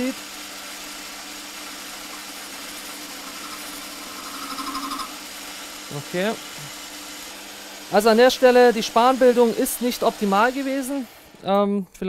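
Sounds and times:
fluttering metal cutting sound: 0.0 - 11.4
metal lathe running: 0.0 - 11.5.

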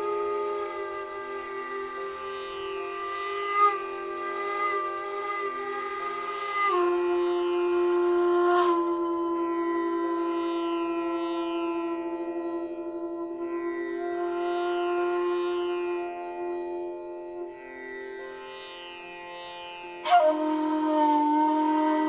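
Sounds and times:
bamboo flute long notes: 0.0 - 22.0
buzzing plucked-string drone: 0.0 - 22.0.

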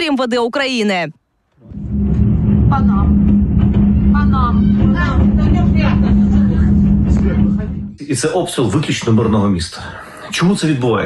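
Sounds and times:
loud low rumble: 1.6 - 8.8.

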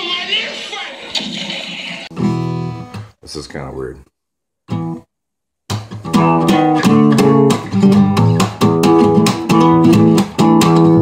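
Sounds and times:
acoustic guitar chord strummed: 5.7 - 11.0.

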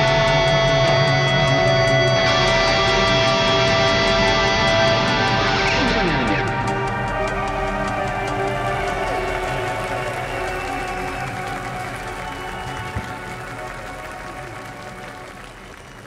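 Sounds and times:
audience applause: 0.0 - 16.0.

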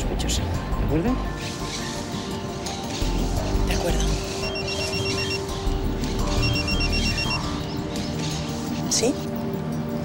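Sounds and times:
phone ringing electronic ringtone: 4.3 - 5.7, 6.3 - 7.6.

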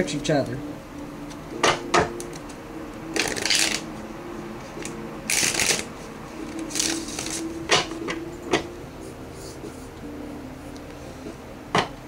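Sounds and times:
cards being shuffled: 3.2 - 3.9, 4.8 - 7.9.

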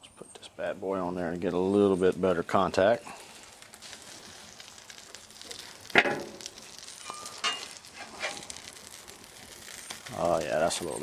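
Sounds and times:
sandwich sizzling on griddle: 0.6 - 11.0
knocks and scrapes on griddle: 5.4 - 9.0.

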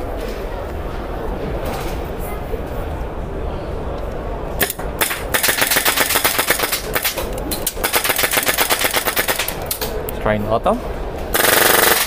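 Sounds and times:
airsoft rifle firing: 4.6 - 9.9, 11.3 - 12.0.

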